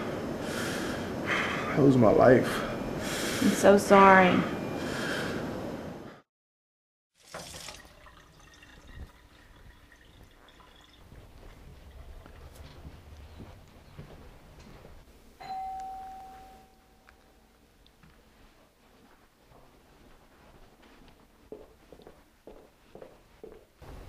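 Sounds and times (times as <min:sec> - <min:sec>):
faint background noise: 0:07.6 - 0:24.0
doorbell chime: 0:15.4 - 0:17.5.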